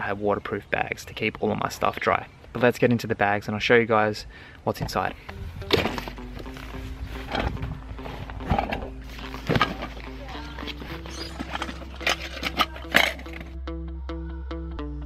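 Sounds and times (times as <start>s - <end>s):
background music with held tones: 5.0s - 15.0s
bag clips clicking and rustling: 8.4s - 13.6s.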